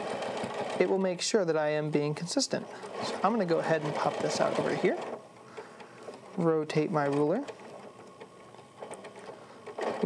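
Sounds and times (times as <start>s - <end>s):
sewing machine running slowly: 0.0s - 10.0s.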